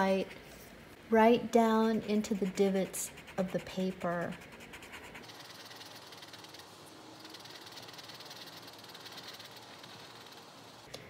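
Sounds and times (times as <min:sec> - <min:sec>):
blending stump rubbing paper: 0:02.2 - 0:10.9.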